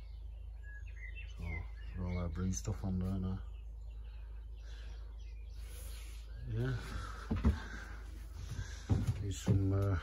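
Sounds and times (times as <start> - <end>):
faint bird chirps: 0.0 - 10.0.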